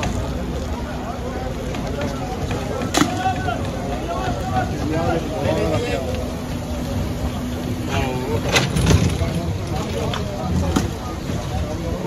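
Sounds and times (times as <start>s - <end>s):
crane engine rumbling: 0.0s - 12.0s
voices talking: 0.0s - 12.0s.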